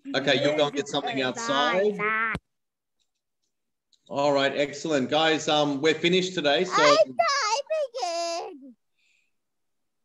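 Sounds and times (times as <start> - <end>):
voice speaking: 6.7 - 7.3.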